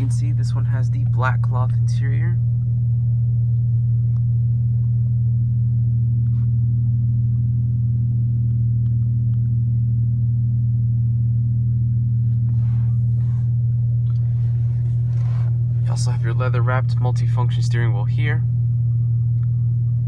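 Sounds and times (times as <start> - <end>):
car engine idling in cabin: 0.0 - 20.0.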